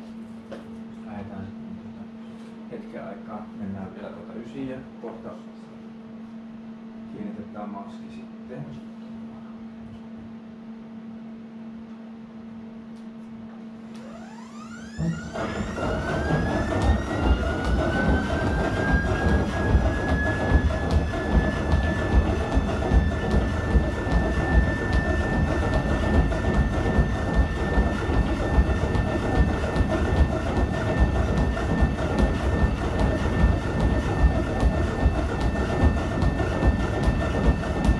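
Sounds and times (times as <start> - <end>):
treadmill motor whine: 0.0 - 37.9
running footsteps on belt: 15.4 - 37.9.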